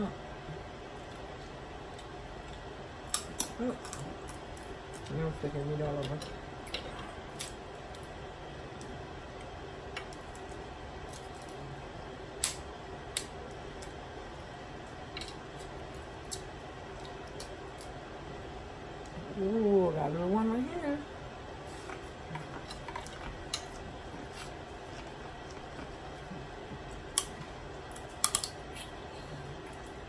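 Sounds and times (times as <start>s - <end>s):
low room hum: 0.0s - 30.0s
shells cracking and snapping: 12.4s - 14.0s, 15.2s - 18.0s, 27.0s - 28.7s.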